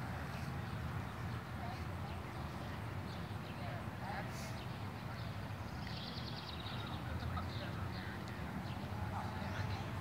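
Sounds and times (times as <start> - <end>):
distant voices of young people: 0.0 - 10.0.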